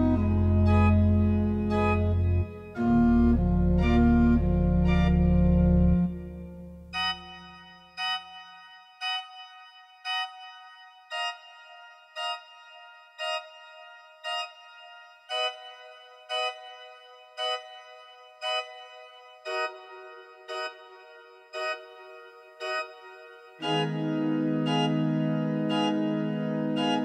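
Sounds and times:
low full-organ chord: 0:00.0 - 0:07.9, 0:19.4 - 0:27.0.

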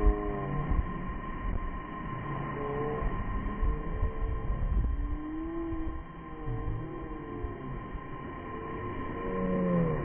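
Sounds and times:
wind buffeting microphone: 0:03.1 - 0:07.0.

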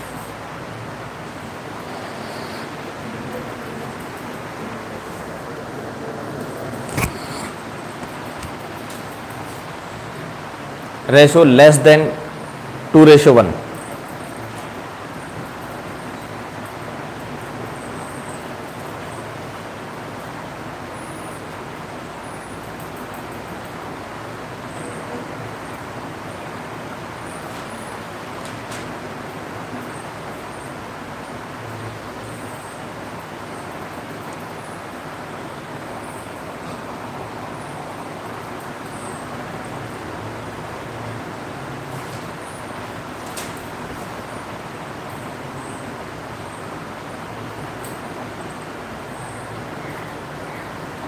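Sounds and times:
room noise hiss: 0:00.0 - 0:51.0.

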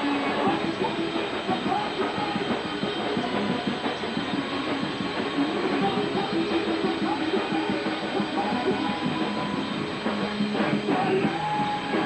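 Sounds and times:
distorted electric guitar: 0:00.0 - 0:12.0
drums: 0:00.0 - 0:12.0.

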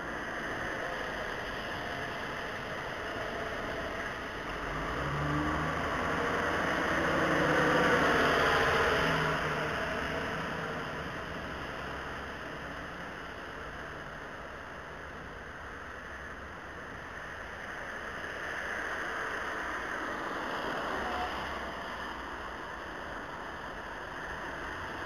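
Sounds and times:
vehicle passing on wet street: 0:00.0 - 0:13.7, 0:17.2 - 0:25.0.

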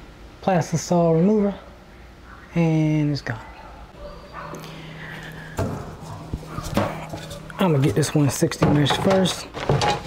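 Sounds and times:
steady low hum: 0:00.0 - 0:10.0
frame knocks and clacks: 0:05.6 - 0:10.0.

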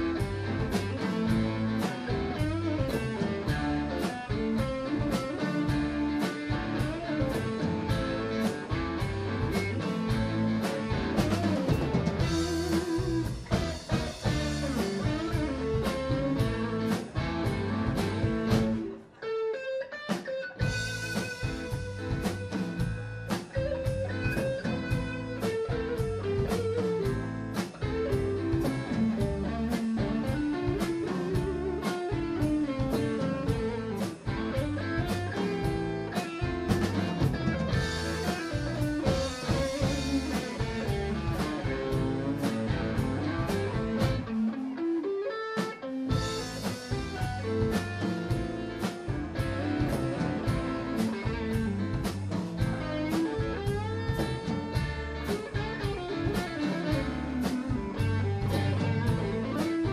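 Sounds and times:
blues band playing: 0:00.0 - 0:59.9.

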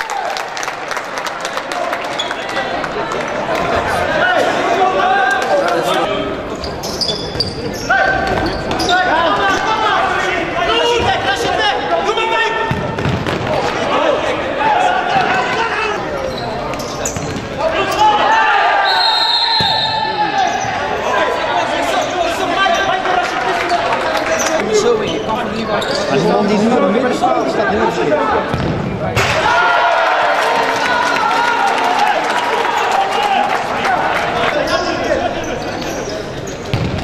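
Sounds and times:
players shouting: 0:07.8 - 0:16.4, 0:17.4 - 0:36.1
short whistle blast: 0:18.9 - 0:20.1.

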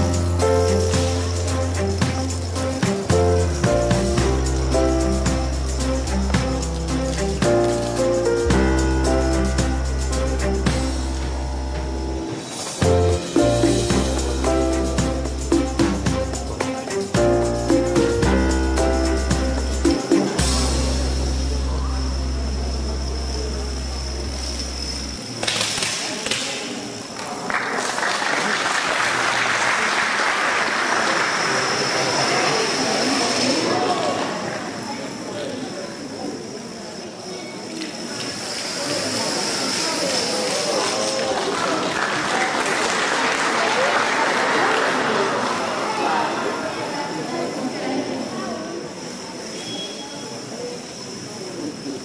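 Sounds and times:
background music: 0:00.0 - 0:25.1
indistinct voices in a hall: 0:00.0 - 0:52.0.

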